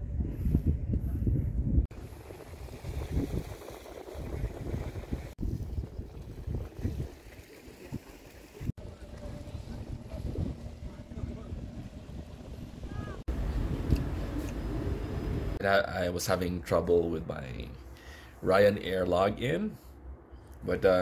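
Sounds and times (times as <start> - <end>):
wind rumbling on microphone: 0.0 - 15.6
faint voices: 8.8 - 13.2.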